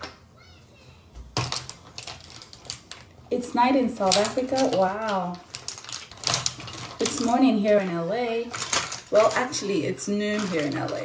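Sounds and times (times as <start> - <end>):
makeup items clicking and clattering: 1.4 - 11.0.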